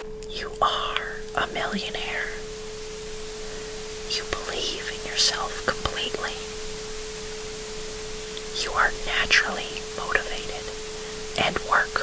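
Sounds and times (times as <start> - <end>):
brown noise: 0.0 - 12.0
person whispering: 0.3 - 2.4, 4.1 - 6.5, 8.4 - 10.8, 11.4 - 12.0.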